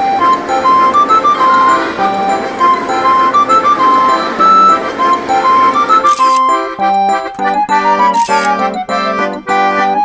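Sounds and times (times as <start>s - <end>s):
bright simple melody: 0.0s - 10.0s.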